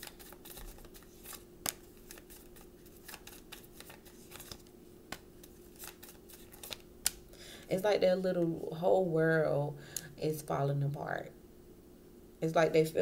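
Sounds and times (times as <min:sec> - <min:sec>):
cards being shuffled: 0:00.0 - 0:07.2
faint steady hum: 0:00.0 - 0:13.0.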